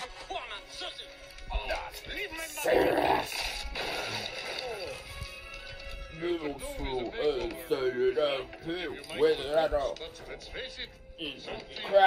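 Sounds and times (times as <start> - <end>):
film soundtrack music: 0.0 - 12.0.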